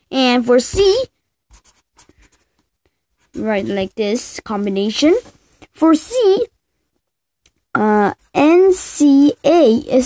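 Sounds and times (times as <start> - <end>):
pen scratching on paper: 0.7 - 2.4.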